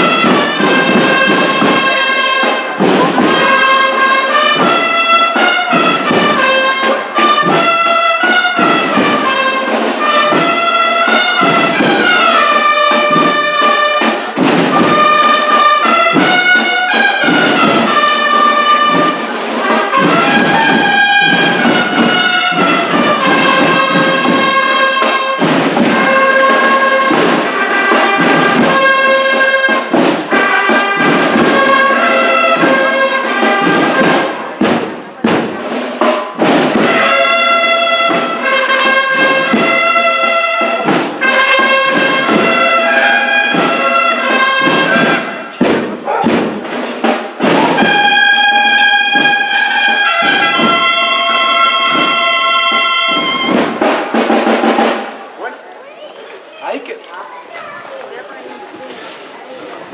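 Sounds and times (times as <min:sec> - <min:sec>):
brass band playing a march: 0:00.0 - 0:57.0.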